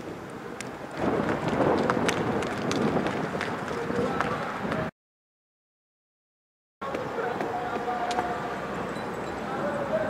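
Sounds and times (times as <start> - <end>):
steady outdoor noise: 0.0 - 4.9, 6.8 - 10.0
distant voices calling out: 6.8 - 10.0.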